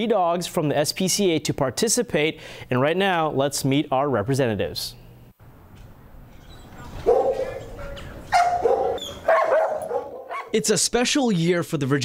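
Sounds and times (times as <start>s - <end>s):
dog barking drawn-out barks: 7.0s - 10.6s.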